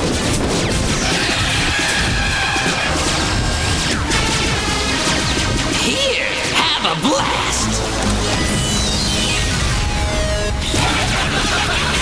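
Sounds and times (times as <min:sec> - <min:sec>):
dramatic action music: 0:00.0 - 0:12.0.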